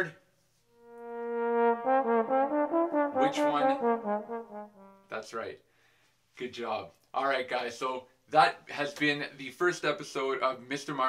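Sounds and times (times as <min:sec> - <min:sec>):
solo trombone playing: 0:00.7 - 0:05.2.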